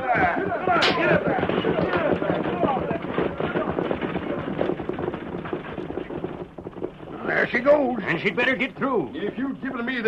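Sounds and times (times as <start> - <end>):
horses hoofbeats: 0.0 - 10.0.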